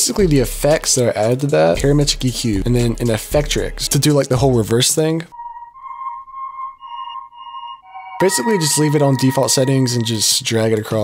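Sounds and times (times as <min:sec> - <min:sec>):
lower synth note: 0:05.3 - 0:09.6
pulsing ambient synth tone: 0:05.3 - 0:10.1.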